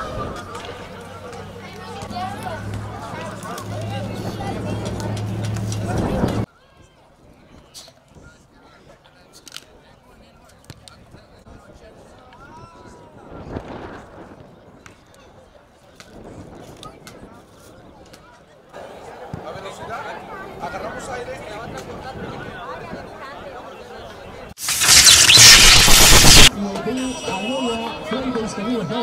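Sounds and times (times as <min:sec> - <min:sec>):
crowd ambience with faint voices: 0:00.0 - 0:29.0.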